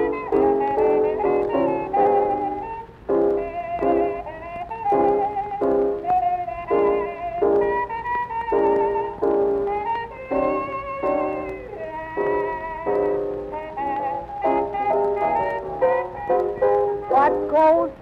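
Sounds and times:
jazz band playing: 0.0 - 18.0.

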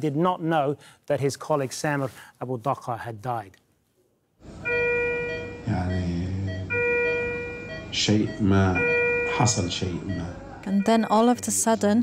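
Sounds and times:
electronic alarm tone: 4.6 - 12.0.

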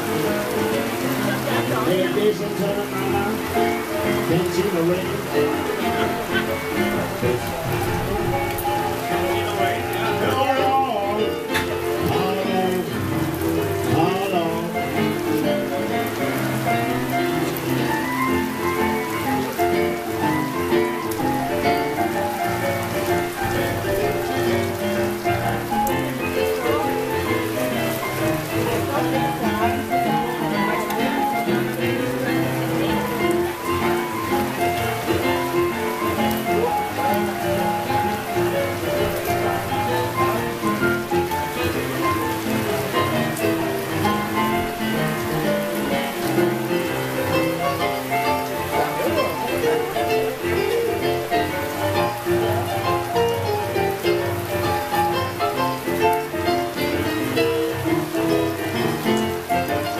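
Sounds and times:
boogie-woogie piano playing: 0.0 - 59.9
steady hiss: 0.0 - 59.9.

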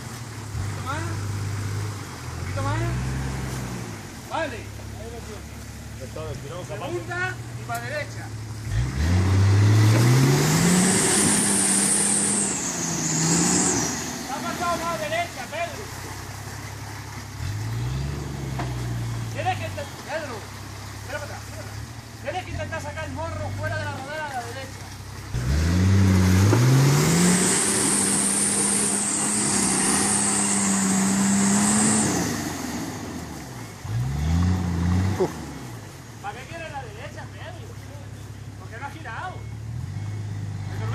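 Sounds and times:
engine revving hard: 8.6 - 15.2, 17.4 - 19.6, 25.3 - 36.0.

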